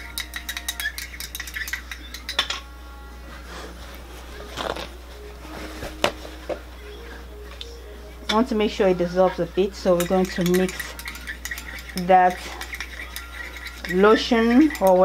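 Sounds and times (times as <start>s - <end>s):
stirring rod clinking in cup: 0.0s - 2.6s, 9.9s - 15.0s.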